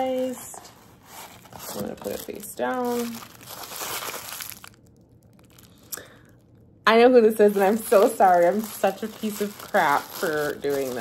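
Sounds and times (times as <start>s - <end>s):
wrapping crumpling: 0.0s - 6.4s, 7.3s - 11.0s.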